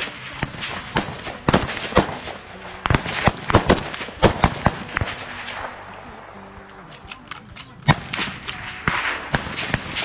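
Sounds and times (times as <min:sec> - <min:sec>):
gunshots: 0:00.0 - 0:10.0.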